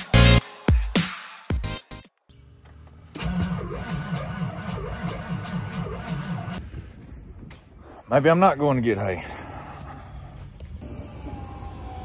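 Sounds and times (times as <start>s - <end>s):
electronic music: 0.0s - 2.2s, 3.2s - 6.6s
engine cranking on starter: 3.1s - 6.6s.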